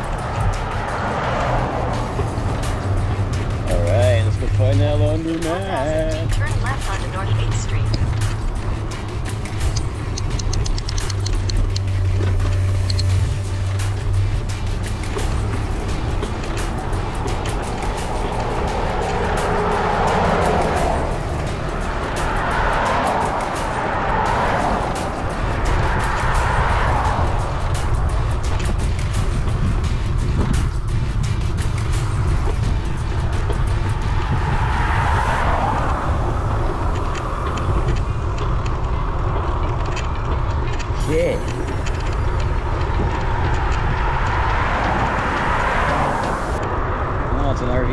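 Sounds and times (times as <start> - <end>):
background music: 0.0 - 47.3
highway traffic passing: 0.0 - 47.9
wind buffeting microphone: 0.0 - 47.9.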